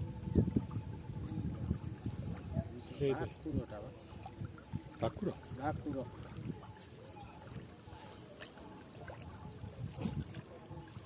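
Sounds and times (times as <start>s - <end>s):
ripples lapping at shore: 0.1s - 11.0s
faint voices: 1.1s - 11.0s.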